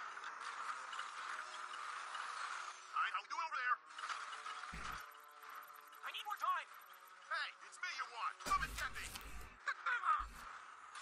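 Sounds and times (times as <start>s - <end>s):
steady rushing background: 0.0s - 11.0s
character speaking: 7.3s - 10.4s.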